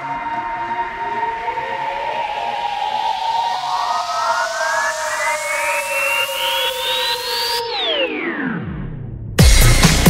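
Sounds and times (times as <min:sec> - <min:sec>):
synthesizer pitch sweeps: 0:00.0 - 0:09.3.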